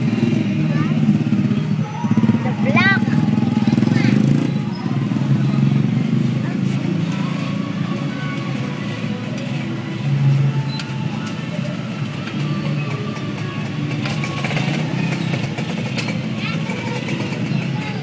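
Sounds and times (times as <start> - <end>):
motorcycle engine running: 0.0 - 18.0
people's voices: 0.0 - 18.0
street traffic: 0.0 - 18.0.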